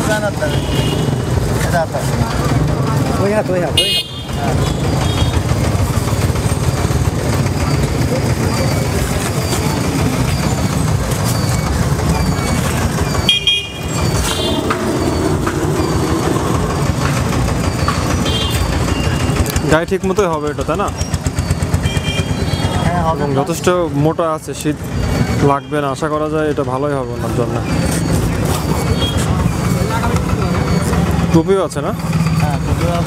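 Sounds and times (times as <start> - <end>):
street traffic rumble: 0.0 - 33.0
voices: 0.0 - 33.0.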